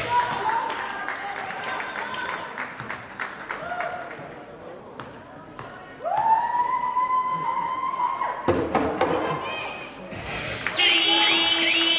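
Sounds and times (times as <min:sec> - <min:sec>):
crowd noise: 0:00.0 - 0:11.9.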